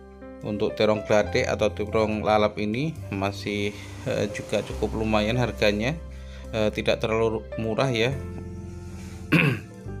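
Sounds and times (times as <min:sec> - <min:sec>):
soft background music: 0:00.0 - 0:10.0
man clearing his throat: 0:09.3 - 0:09.8.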